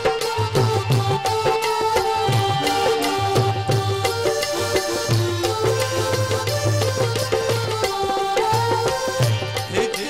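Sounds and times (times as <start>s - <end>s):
sustained folk melody: 0.0s - 10.0s.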